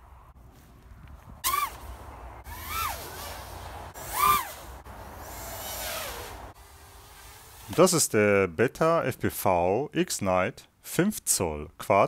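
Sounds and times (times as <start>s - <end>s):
drone motors whining: 2.4s - 7.6s.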